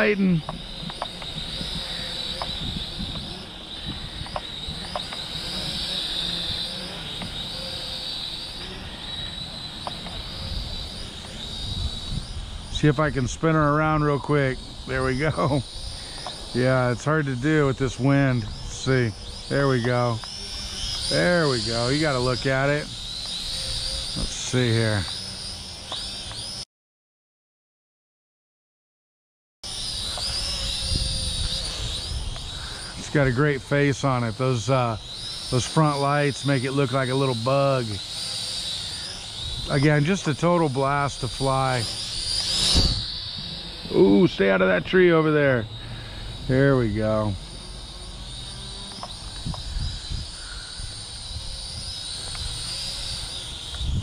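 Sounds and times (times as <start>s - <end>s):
wind gusting on microphone: 0.0s - 7.6s, 9.3s - 25.0s, 30.2s - 35.8s, 39.1s - 45.0s, 49.1s - 54.0s
toy drone propellers whining: 0.0s - 26.6s, 29.6s - 54.0s
wind rumble on microphone: 0.5s - 5.0s, 11.6s - 14.0s, 41.2s - 43.6s, 49.2s - 52.7s, 53.7s - 54.0s.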